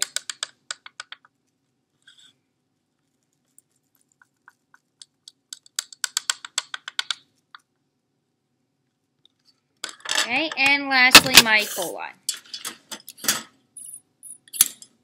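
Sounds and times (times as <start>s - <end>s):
person speaking: 10.2s - 12.3s.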